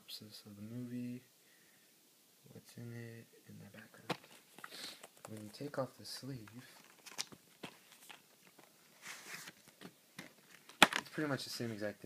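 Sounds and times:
cardboard sliding rustle: 8.9s - 9.8s
plastic case clicks: 10.2s - 11.1s.

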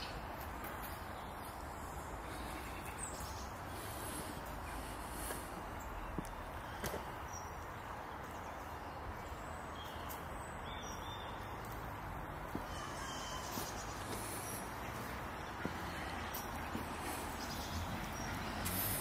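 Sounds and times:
outdoor background noise: 0.0s - 19.0s.

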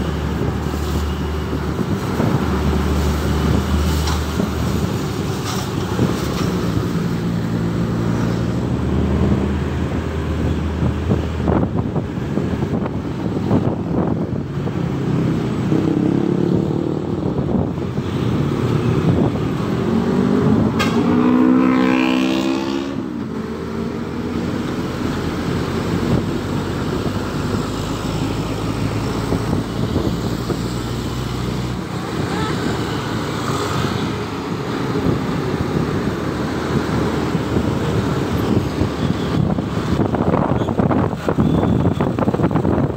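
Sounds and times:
engine and road noise: 0.0s - 42.9s
engine revving: 18.4s - 40.1s.

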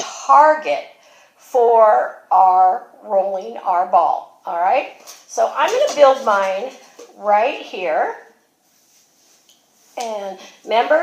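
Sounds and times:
woman's voice: 0.0s - 0.9s, 1.5s - 8.3s, 10.0s - 11.0s.

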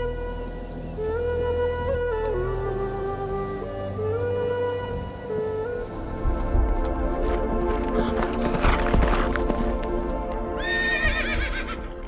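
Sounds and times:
background music: 0.0s - 12.0s
horse whinnying: 10.6s - 11.9s.

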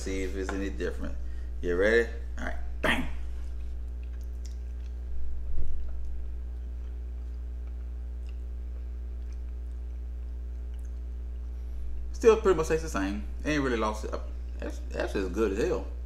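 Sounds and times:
low steady hum: 0.0s - 16.0s
soft chewing and mouth sounds: 3.2s - 12.1s.

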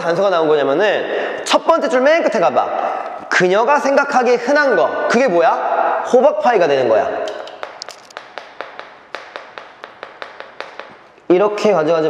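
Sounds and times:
chalk tapping on chalkboard: 7.4s - 11.3s.

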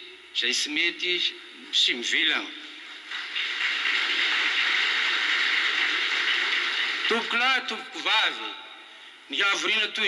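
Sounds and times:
audience applauding: 2.9s - 7.7s.

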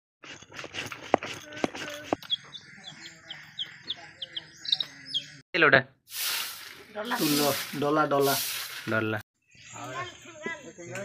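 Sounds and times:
stone roller scraping on stone: 0.2s - 3.9s
chick peeping: 2.1s - 5.4s.

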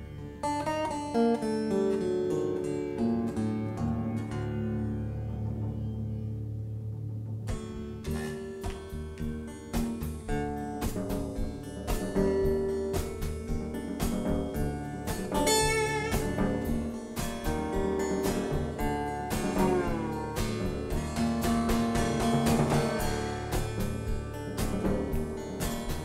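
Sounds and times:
slide guitar playing blues: 0.0s - 26.0s
light drums: 7.5s - 26.0s.

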